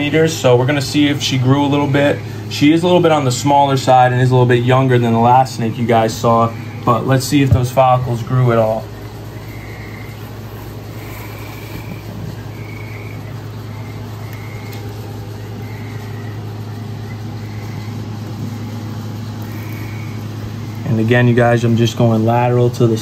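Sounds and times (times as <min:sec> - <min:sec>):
steady low hum: 0:00.0 - 0:23.0
faint high-pitched chirps: 0:08.8 - 0:21.0.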